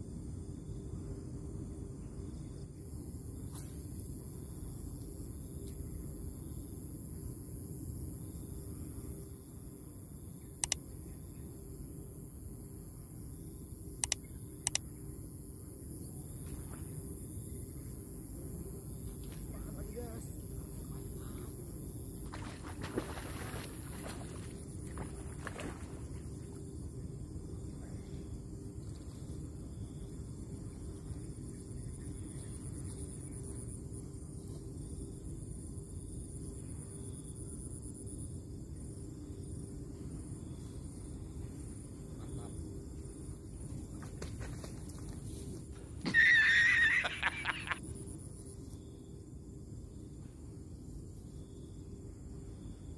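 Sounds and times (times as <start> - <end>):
high thin insect drone: 0.0 - 52.9
sharp clicks: 10.6 - 10.8, 14.0 - 14.8.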